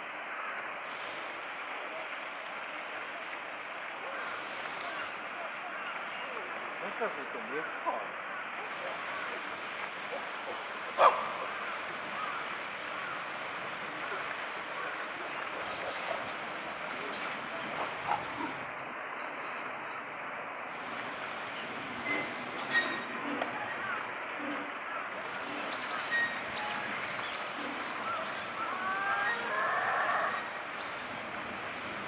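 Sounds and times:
faint distant voices: 0:00.1 - 0:32.0
gliding calls: 0:21.1 - 0:32.0.

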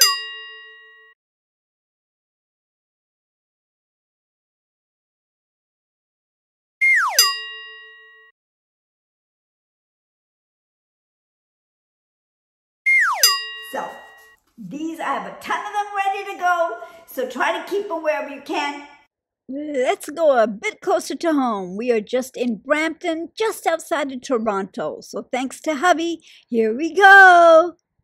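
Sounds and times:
bell-like ding: 0:00.0 - 0:01.2, 0:07.1 - 0:08.3, 0:13.1 - 0:14.4
cartoon falling whistle: 0:06.8 - 0:07.3, 0:12.9 - 0:13.3.

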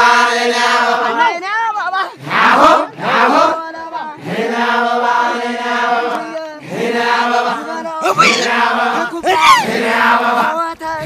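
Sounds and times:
voices chanting held notes: 0:02.0 - 0:11.0.

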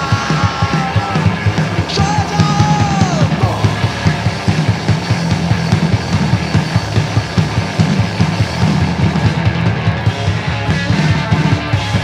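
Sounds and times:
drum kit beating: 0:00.0 - 0:12.0
live band playing fast music: 0:00.0 - 0:12.0.

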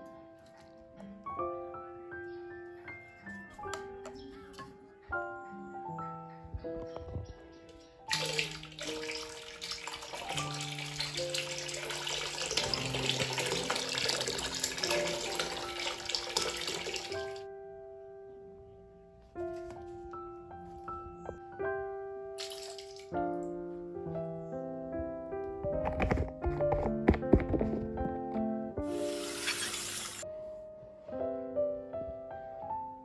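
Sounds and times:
piano background music: 0:00.0 - 0:33.0
tap water pouring into bucket: 0:08.1 - 0:17.4, 0:22.4 - 0:23.1, 0:28.9 - 0:30.2.

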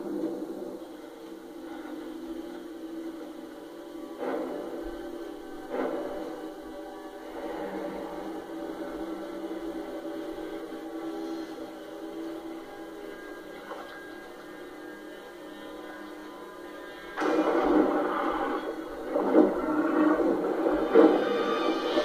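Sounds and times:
low music drone: 0:00.0 - 0:22.0
loud burst of rough noise: 0:15.4 - 0:22.0.

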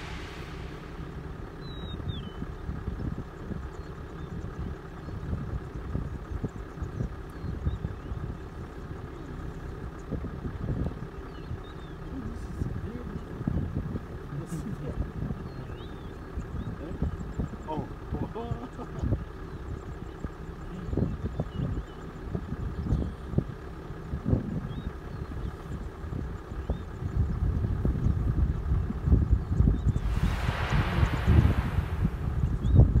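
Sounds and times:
rushing hiss: 0:00.0 - 0:01.6, 0:30.0 - 0:33.0
vehicle engine idling: 0:00.0 - 0:33.0
wind buffeting microphone: 0:00.0 - 0:33.0.

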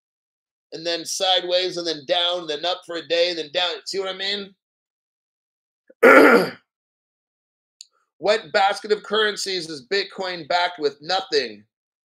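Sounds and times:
man clearing his throat: 0:06.0 - 0:06.6.

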